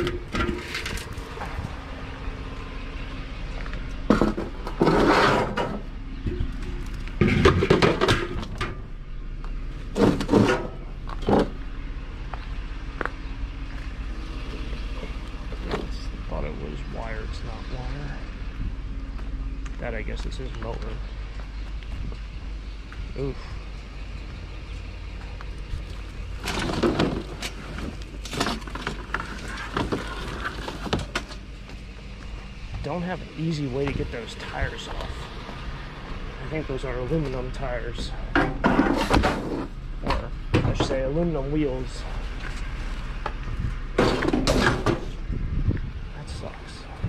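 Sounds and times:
loud metal clatter and scrape: 0.0 - 1.6, 4.0 - 8.8, 9.9 - 11.6, 26.4 - 31.4, 38.2 - 39.8, 44.0 - 45.2
low steady rumble: 0.0 - 47.0
metal folding chairs clattering: 44.0 - 45.1.

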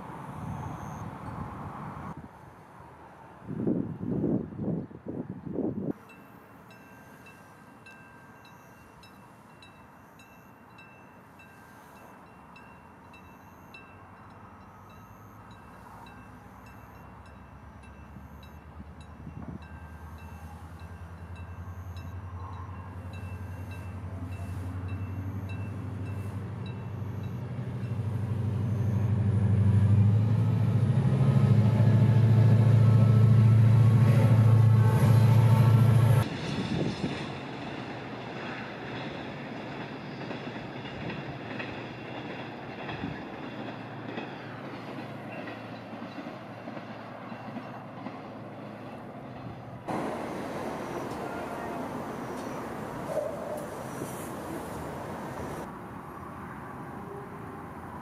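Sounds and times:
level-crossing warning bell: 0.0 - 1.7, 5.9 - 30.6, 49.9 - 55.7
locomotive engine drone: 5.9 - 58.0.

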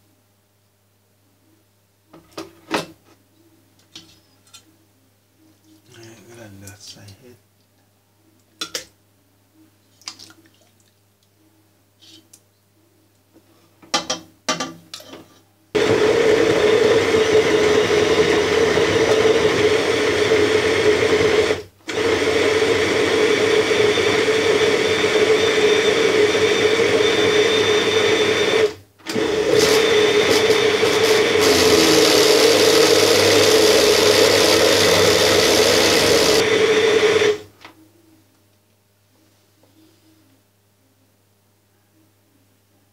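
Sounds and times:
electric blender running: 15.8 - 37.5.

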